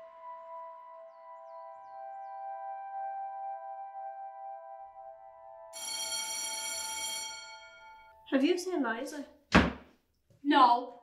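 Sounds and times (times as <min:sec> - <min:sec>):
soft background music: 0:00.0 - 0:07.2
school bell ringing: 0:05.8 - 0:08.2.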